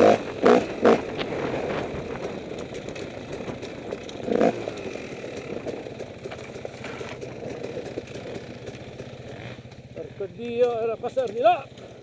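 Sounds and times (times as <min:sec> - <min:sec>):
motorcycle engine at low revs: 0:00.0 - 0:12.0
motorcycle rattles and knocks: 0:00.0 - 0:12.0.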